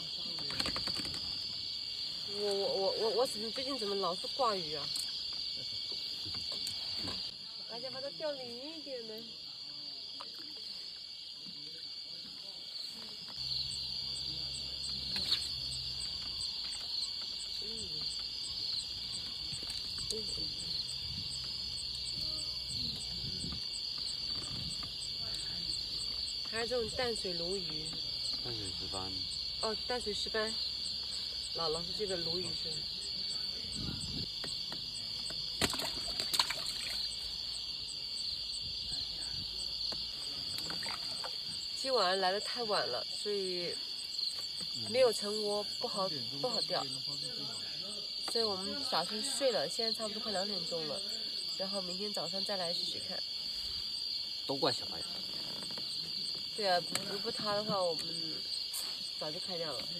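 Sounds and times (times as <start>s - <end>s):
insect chorus: 0.0s - 59.9s.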